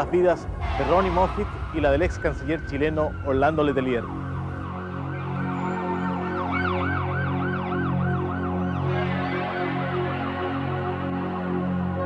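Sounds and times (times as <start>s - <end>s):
low steady drone: 0.0s - 7.2s
emergency siren yelping: 0.6s - 11.0s.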